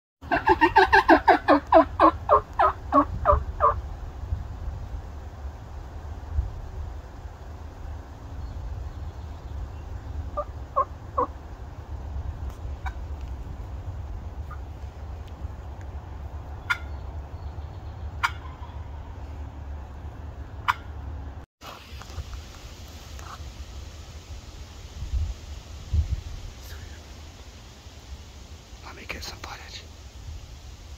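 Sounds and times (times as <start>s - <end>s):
turkey calling: 0.2s - 3.8s, 10.3s - 11.4s, 16.6s - 17.0s, 18.1s - 19.2s, 20.6s - 21.0s
steady low rumble: 1.6s - 21.4s.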